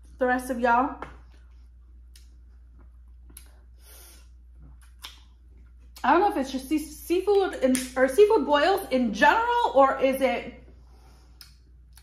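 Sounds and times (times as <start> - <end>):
low steady hum: 0.0 - 12.0
mouth clicks while eating: 4.7 - 6.0, 11.4 - 12.0.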